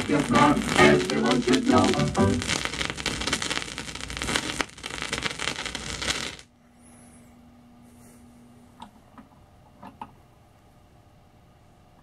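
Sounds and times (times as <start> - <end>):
vinyl surface crackle: 0.0 - 6.5
faint steady hum: 0.0 - 12.0.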